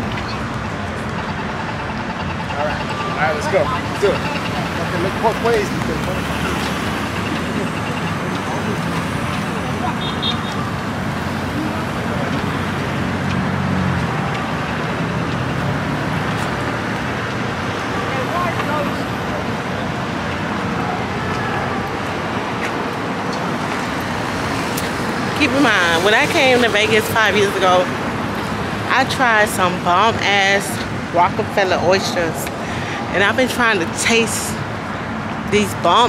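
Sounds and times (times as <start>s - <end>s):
city street traffic: 0.0s - 36.0s.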